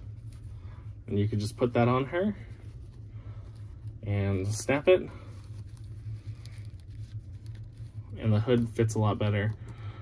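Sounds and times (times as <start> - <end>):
cloth rustling: 0.0 - 9.4
steady low hum: 0.0 - 10.0.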